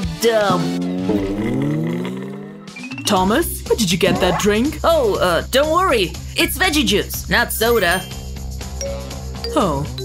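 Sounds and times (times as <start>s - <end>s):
pitch-bending synth tones: 4.0s - 4.6s.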